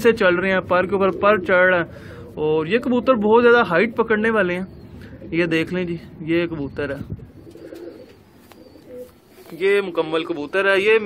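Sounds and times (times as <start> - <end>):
pigeon cooing: 7.2 - 9.4.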